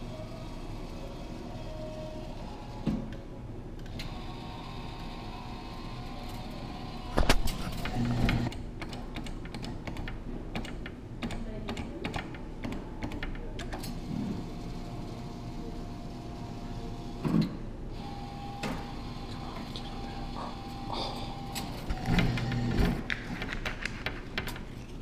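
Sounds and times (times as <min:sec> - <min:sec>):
steady background hum: 0:00.0 - 0:25.0.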